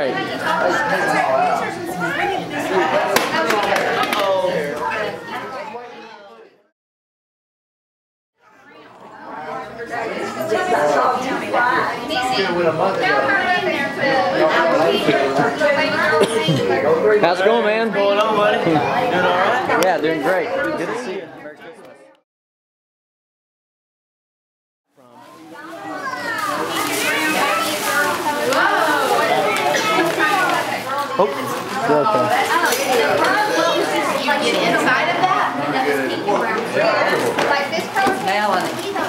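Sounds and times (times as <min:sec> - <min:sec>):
chatter of people talking: 0:00.0 - 0:06.7, 0:08.4 - 0:22.2, 0:25.0 - 0:39.0
tissue paper rustling: 0:25.2 - 0:31.6
children's excited voices: 0:25.5 - 0:39.0.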